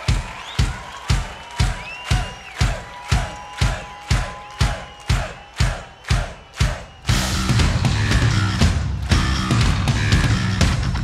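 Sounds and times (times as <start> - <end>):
crowd cheering and whistling: 0.0 - 11.0
bass drum beating: 6.6 - 11.0
rock band playing: 7.1 - 11.0.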